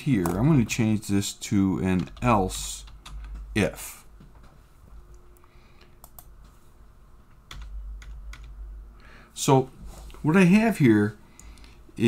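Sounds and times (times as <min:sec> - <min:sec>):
computer keyboard clicks: 0:06.0 - 0:06.3.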